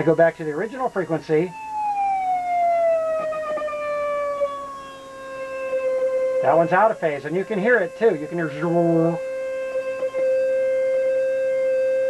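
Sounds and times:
electronic test tone gliding: 1.5s - 12.0s.

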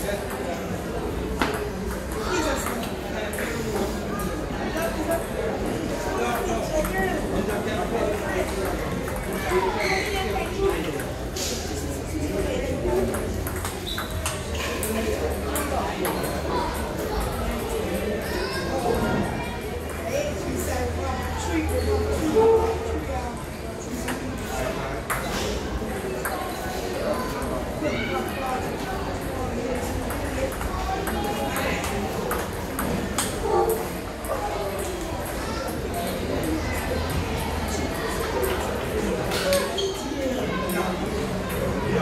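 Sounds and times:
background chatter: 0.0s - 42.0s
table tennis ball clicking: 13.1s - 14.4s.

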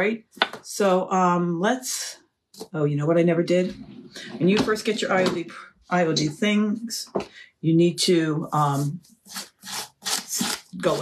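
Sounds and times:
sandpaper rubbing back and forth: 8.4s - 11.0s.

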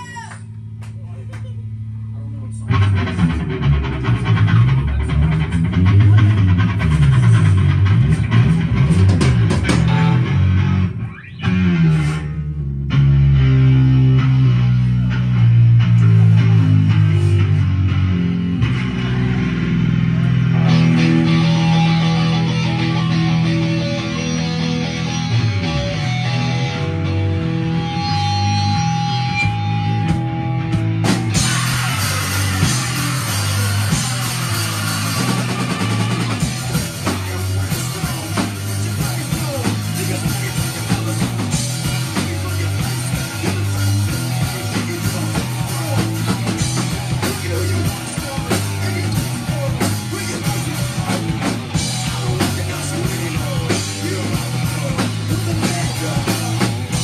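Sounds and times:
rock band playing: 0.0s - 57.0s.

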